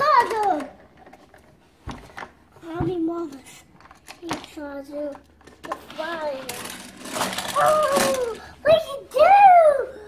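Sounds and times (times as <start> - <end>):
plastic toy parts clicking: 3.4 - 8.4.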